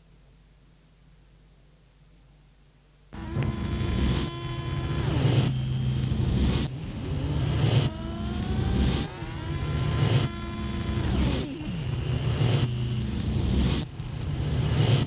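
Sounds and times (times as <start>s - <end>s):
industrial electronic music: 3.2s - 15.0s.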